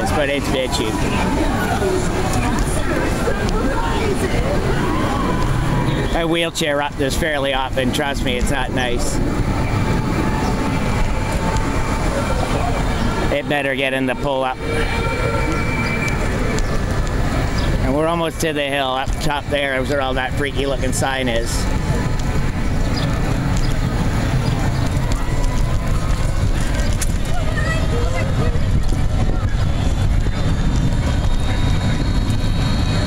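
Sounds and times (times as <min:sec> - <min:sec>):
wheelchair wheels rumbling on asphalt: 0:00.0 - 0:33.0.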